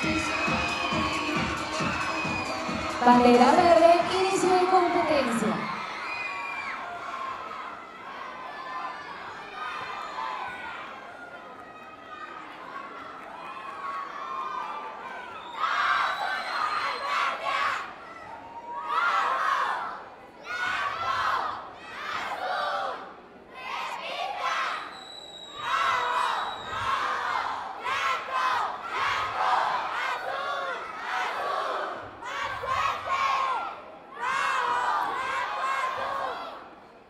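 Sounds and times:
cheerleaders shouting a cheer: 0.0s - 24.9s, 25.6s - 36.8s.

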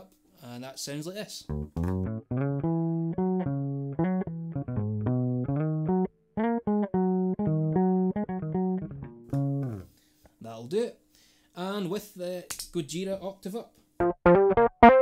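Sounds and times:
electric bass fingerstyle riff: 1.5s - 9.9s, 14.0s - 15.0s.

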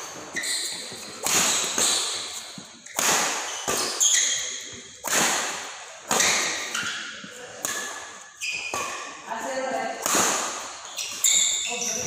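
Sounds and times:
shoes squeaking on court: 0.0s - 4.9s, 6.1s - 9.2s, 10.6s - 12.0s
racket smacking shuttlecock: 0.3s - 9.1s, 9.9s - 11.7s.

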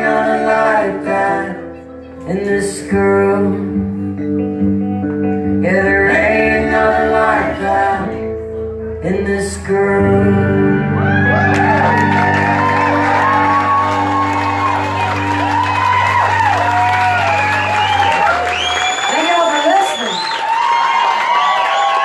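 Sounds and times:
woman singing lead: 0.0s - 4.5s, 5.4s - 11.7s
guitar: 0.0s - 22.0s.

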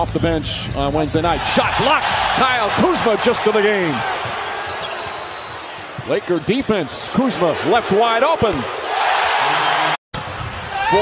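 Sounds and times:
arena crowd noise: 1.0s - 11.0s.

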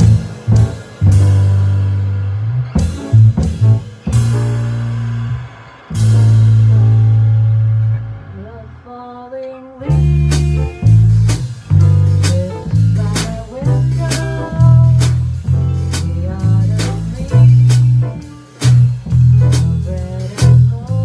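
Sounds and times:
jazz combo playing: 0.0s - 8.8s, 9.8s - 21.0s
low bass notes: 0.0s - 9.0s, 9.8s - 21.0s.

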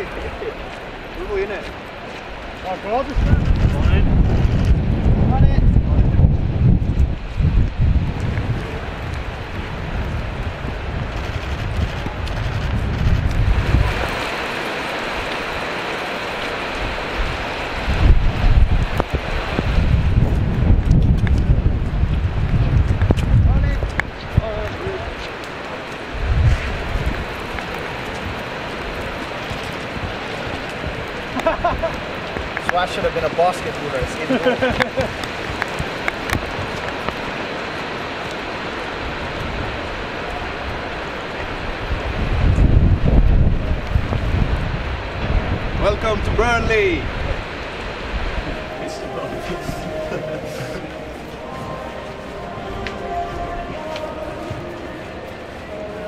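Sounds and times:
rain on pavement: 0.0s - 56.0s
wind buffeting microphone: 0.0s - 56.0s.

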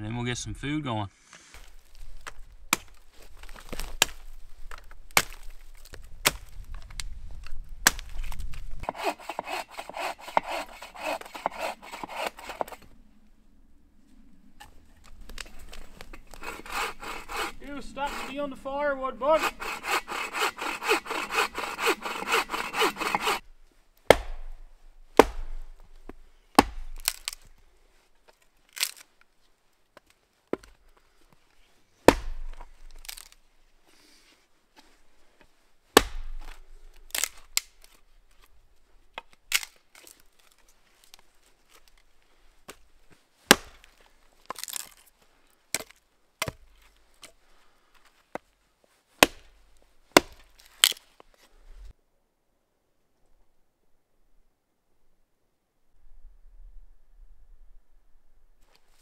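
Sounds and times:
axe chopping wood: 2.2s - 5.6s, 6.2s - 6.5s, 7.8s - 12.8s, 19.6s - 23.4s, 24.1s - 24.6s, 25.2s - 27.4s, 32.0s - 33.3s, 35.9s - 37.7s, 43.5s - 45.0s, 45.7s - 46.7s, 49.2s - 51.0s
bow saw cutting log: 8.8s - 12.9s, 15.4s - 23.4s.

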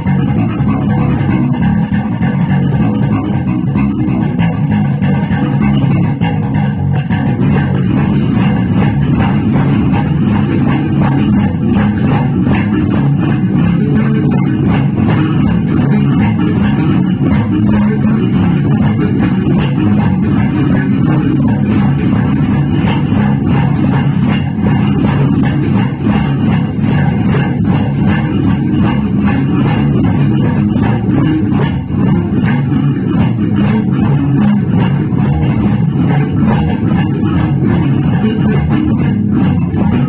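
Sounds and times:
electric bass fingerstyle groove: 0.0s - 40.0s.

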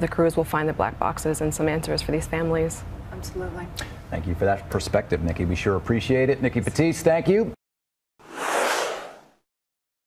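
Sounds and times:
whoosh sound effect: 8.2s - 9.4s.

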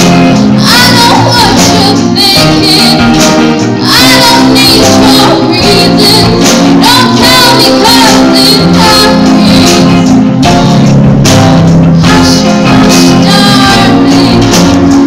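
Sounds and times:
acoustic guitar: 0.0s - 15.0s
drums: 0.0s - 15.0s
person singing into a microphone: 0.6s - 3.2s, 3.8s - 10.1s, 12.0s - 14.8s.

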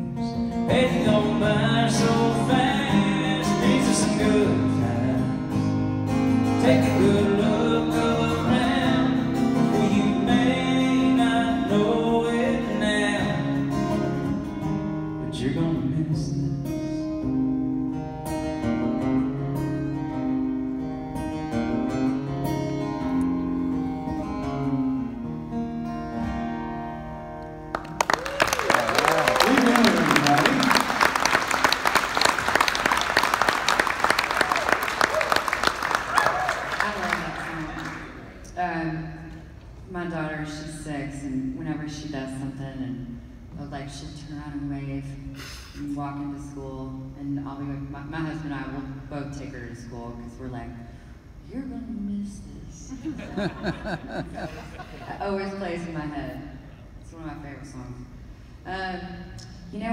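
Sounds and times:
person singing country song: 0.0s - 17.6s
acoustic guitars: 0.0s - 59.9s
audience applause and cheers: 27.8s - 38.2s.

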